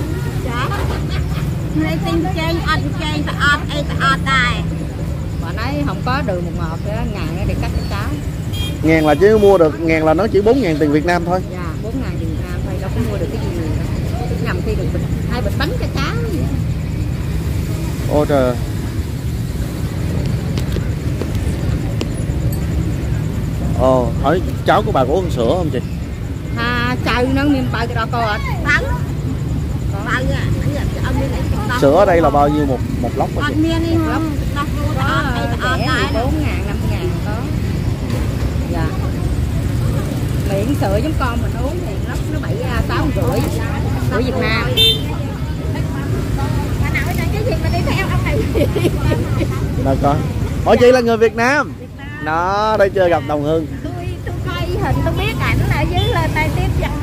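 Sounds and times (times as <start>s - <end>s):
people talking: 0.0s - 18.6s, 20.0s - 57.0s
motorbike traffic rumble: 0.0s - 57.0s.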